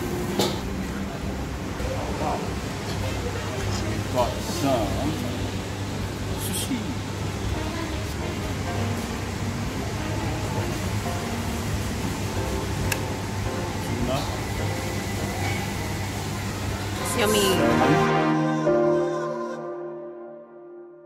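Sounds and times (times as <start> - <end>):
indistinct chatter of diners: 0.2 - 18.0.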